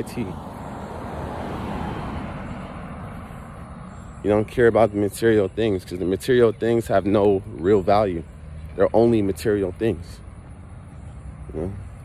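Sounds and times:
vehicle passing by: 0.0 - 12.0.

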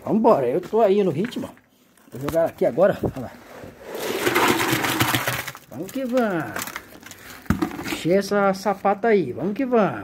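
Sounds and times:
wet concrete pouring: 3.5 - 8.0.

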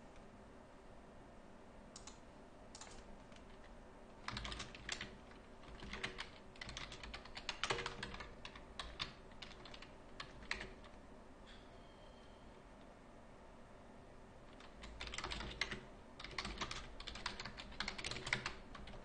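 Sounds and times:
typing on computer keyboard: 2.0 - 10.9, 14.5 - 19.0.

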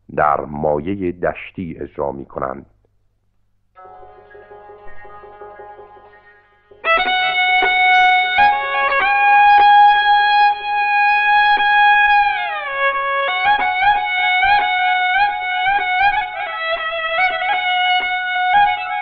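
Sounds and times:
classical instrumental melody: 3.8 - 19.0.

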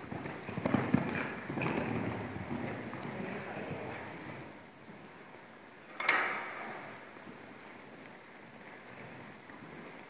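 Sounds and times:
horse hoofbeats on sand: 0.0 - 5.1, 7.2 - 10.0.

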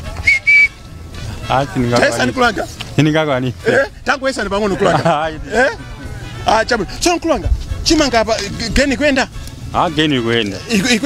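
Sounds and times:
high whistle blasts: 0.1 - 0.9.

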